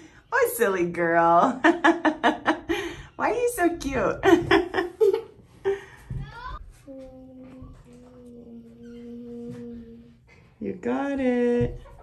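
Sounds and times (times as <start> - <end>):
girl singing a steady note: 6.9 - 10.1.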